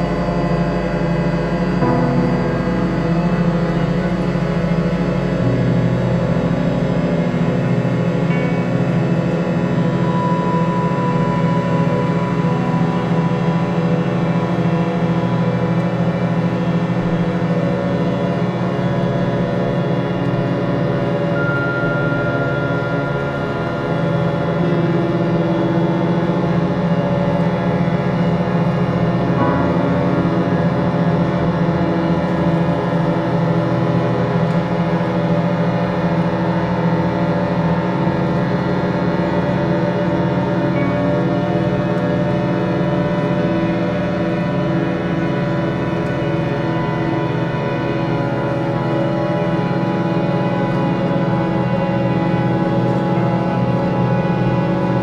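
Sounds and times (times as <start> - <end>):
experimental drone music: 0.0 - 55.0
thin higher tone: 21.1 - 26.2.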